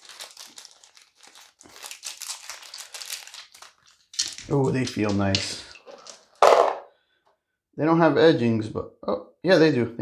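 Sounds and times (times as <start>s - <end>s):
plastic bag crinkling: 0.0s - 6.7s.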